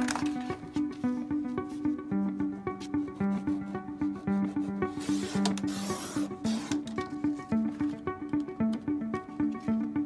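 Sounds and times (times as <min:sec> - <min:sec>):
guitar music: 0:00.0 - 0:10.0.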